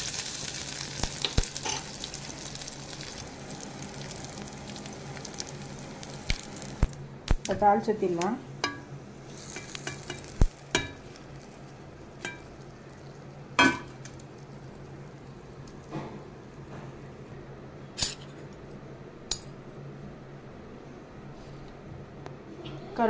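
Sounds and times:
low steady hum: 0.0 - 23.0.

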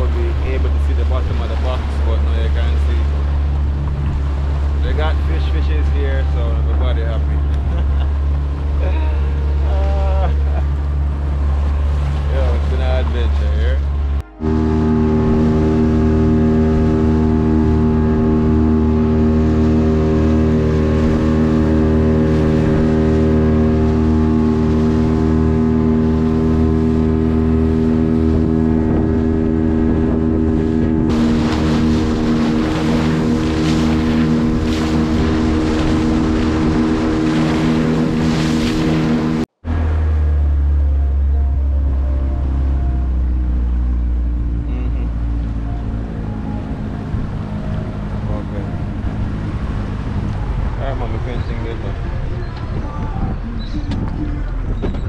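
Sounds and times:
outboard motor running: 0.0 - 55.0
water splashing against hull: 0.0 - 55.0.

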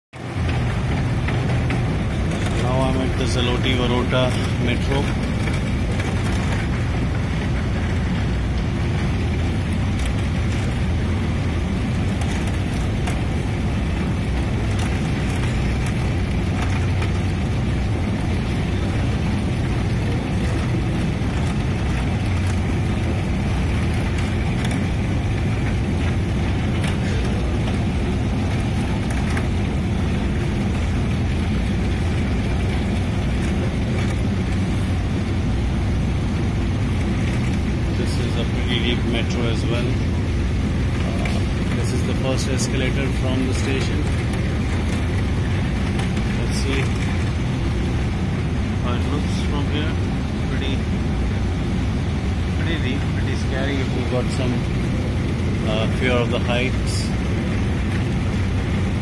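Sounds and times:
escalator low rumble: 0.1 - 59.0.

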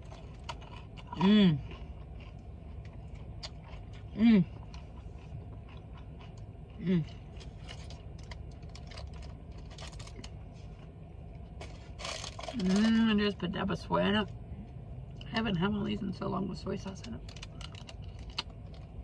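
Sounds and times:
chewing crunchy food: 0.0 - 13.1, 17.0 - 19.0
person humming mmm: 1.1 - 1.7, 4.1 - 4.6, 6.8 - 7.2.

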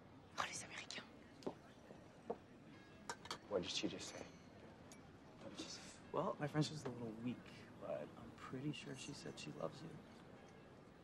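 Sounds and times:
woman whispering: 0.4 - 1.2.

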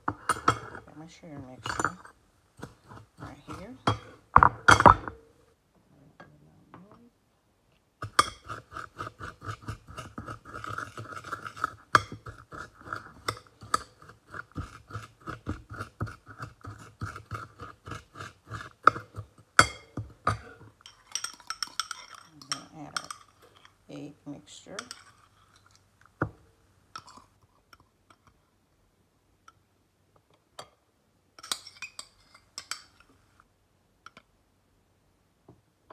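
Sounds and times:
metal spoon scraping ceramic bowl: 0.1 - 5.1, 8.0 - 25.8, 31.4 - 33.1.

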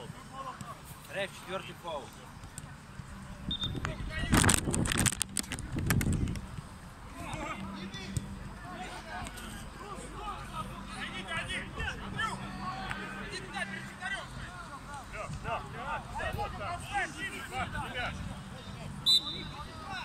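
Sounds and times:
people calling out and talking: 6.4 - 20.0.

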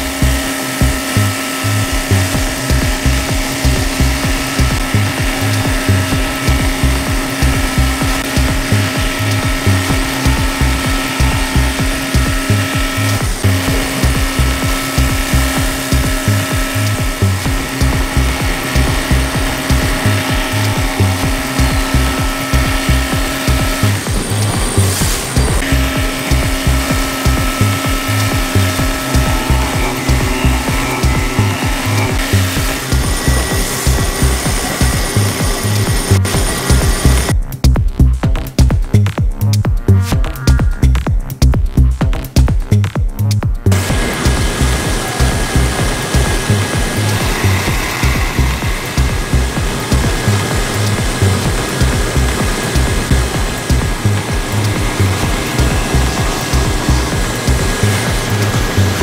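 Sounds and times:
milling machine cutting whine: 0.0 - 37.4, 43.7 - 59.0
low pulsing: 0.0 - 59.0.

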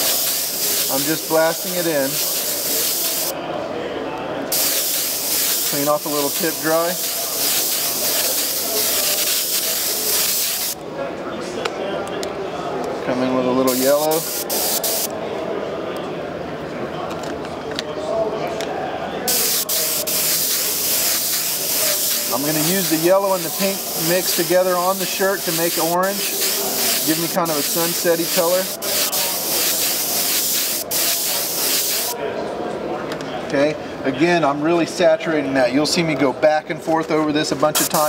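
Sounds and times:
airbrush spraying hiss: 0.0 - 3.3, 4.5 - 10.8, 13.7 - 15.1, 19.3 - 32.2, 37.8 - 38.0.

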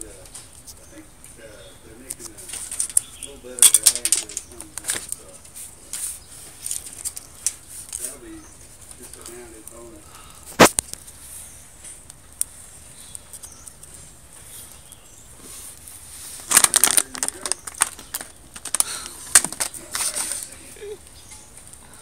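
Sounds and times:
sharp clicks and pops: 2.0 - 9.8, 10.4 - 11.2, 11.8 - 15.1, 16.4 - 21.9.

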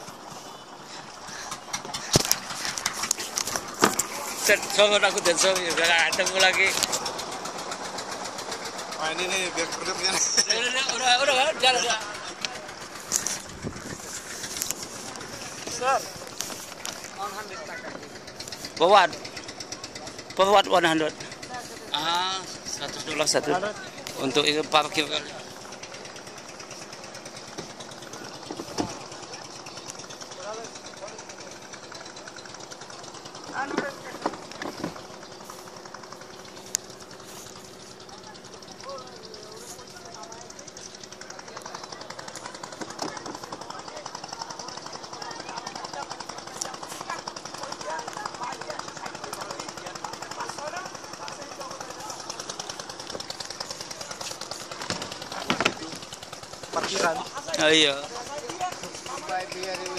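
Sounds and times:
distant engine running: 0.0 - 59.9
faint voices: 0.0 - 59.9.

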